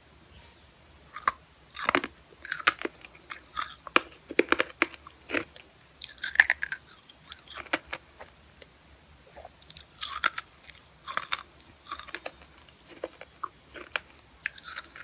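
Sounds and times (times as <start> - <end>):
hard candy crunching: 1.1 - 8.2, 9.6 - 15.0.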